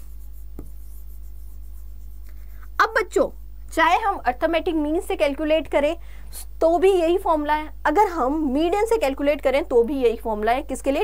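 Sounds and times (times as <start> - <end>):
pen scratching on board: 0.0 - 2.6
steady low hum: 0.0 - 11.0
pen tapping on board: 0.5 - 0.9.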